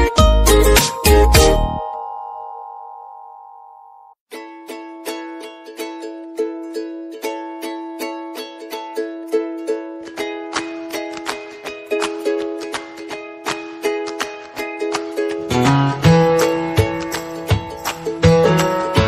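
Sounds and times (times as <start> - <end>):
bouncy plucked-string tune: 0.0 - 19.0.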